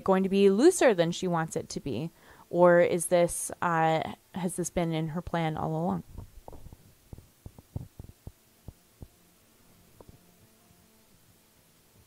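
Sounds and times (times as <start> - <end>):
low steady hum: 0.0 - 12.0
faint low thumps: 6.0 - 9.2.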